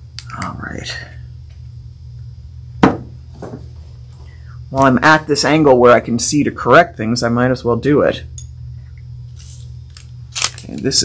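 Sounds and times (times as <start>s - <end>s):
steady low hum: 0.0s - 11.0s
jar knocking on table: 2.8s - 3.6s.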